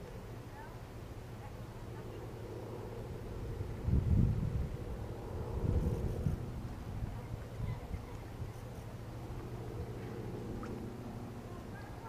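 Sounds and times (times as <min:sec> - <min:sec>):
faint steady hum: 0:00.0 - 0:12.0
wind buffeting microphone: 0:03.0 - 0:11.2.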